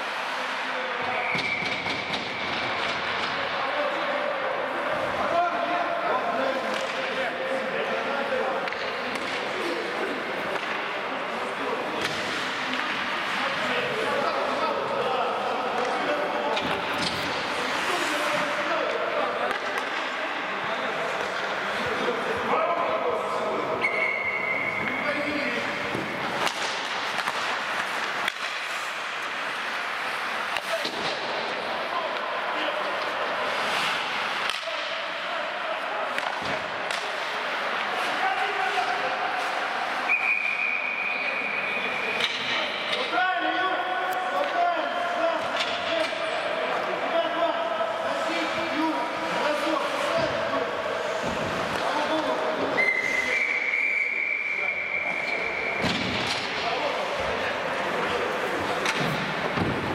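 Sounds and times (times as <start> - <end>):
hockey sticks and puck clacking: 0.0 - 44.7, 45.4 - 53.3, 54.8 - 59.9
skate and rink noise: 0.0 - 59.9
high whistle blasts: 40.1 - 41.8, 52.8 - 55.8.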